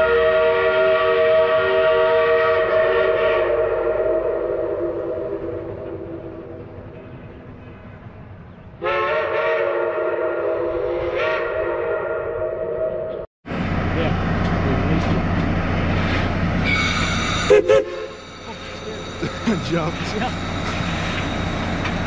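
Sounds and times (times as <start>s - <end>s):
steam locomotive whistle: 0.0s - 6.5s, 8.8s - 13.1s, 16.6s - 19.4s.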